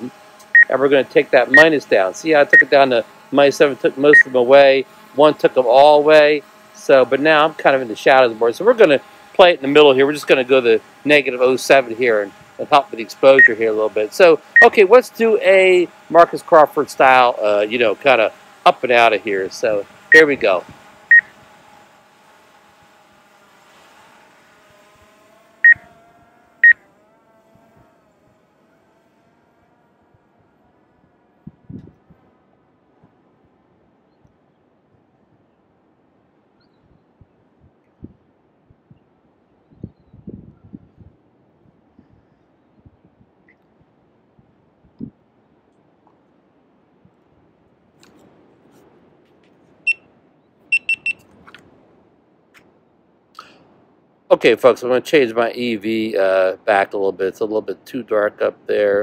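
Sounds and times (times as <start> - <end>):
drone propeller hum: 0.0 - 59.0
short electronic beeps: 21.1 - 21.3, 49.9 - 50.1, 50.7 - 51.3.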